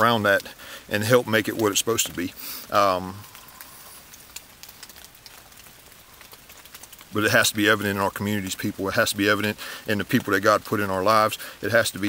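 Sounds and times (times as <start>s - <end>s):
light rain hiss: 0.0s - 12.0s
water drips ticking: 0.0s - 12.0s.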